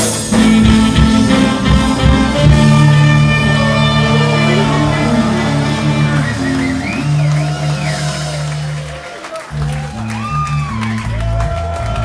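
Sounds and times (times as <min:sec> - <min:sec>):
ska band playing: 0:00.0 - 0:11.8
high gliding notes: 0:00.2 - 0:09.0.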